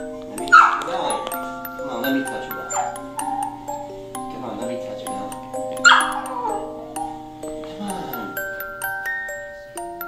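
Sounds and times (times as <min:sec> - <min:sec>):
music with chiming tones: 0:00.0 - 0:10.0
small dog barking: 0:00.5 - 0:01.0, 0:02.3 - 0:03.8, 0:05.8 - 0:07.2.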